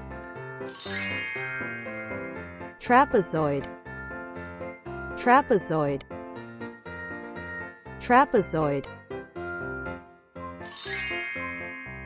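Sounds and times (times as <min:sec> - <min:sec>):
light children's music: 0:00.0 - 0:12.0
bright chime with rising sparkle: 0:00.4 - 0:02.7, 0:10.6 - 0:12.0.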